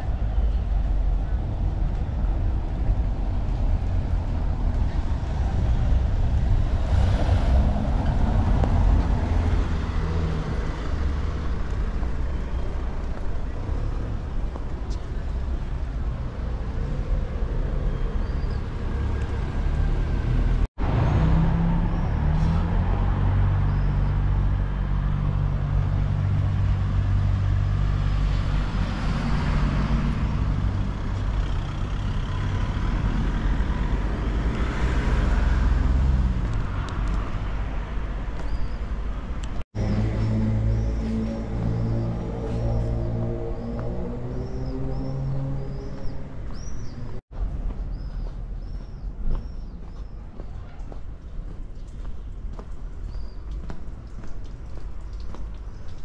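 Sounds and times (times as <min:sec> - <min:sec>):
cars passing on cobbled road: 0:00.0 - 0:56.0.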